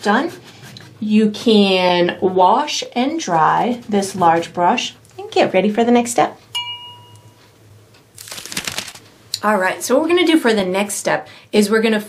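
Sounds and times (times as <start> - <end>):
faint ringing tone: 6.6 - 7.5
crackly rustle: 8.2 - 9.1.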